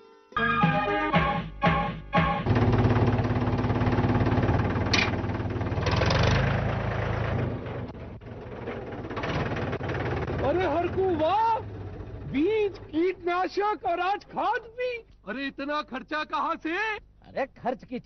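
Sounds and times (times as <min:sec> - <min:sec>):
tractor diesel engine rumbling: 0:02.5 - 0:13.4.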